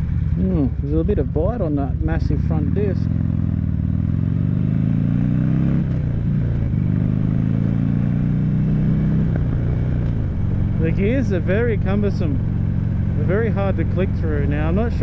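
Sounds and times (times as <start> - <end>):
motorcycle engine shifting gears: 0.0 - 15.0.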